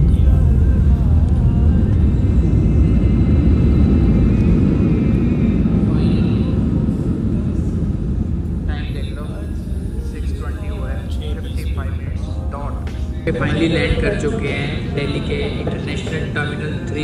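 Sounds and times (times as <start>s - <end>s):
airliner engines: 0.0s - 17.0s
wheels rumbling on runway: 0.0s - 17.0s.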